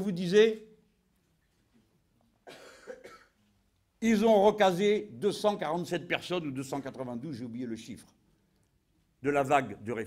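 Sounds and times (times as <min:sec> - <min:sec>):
short cough: 0:02.4 - 0:03.4.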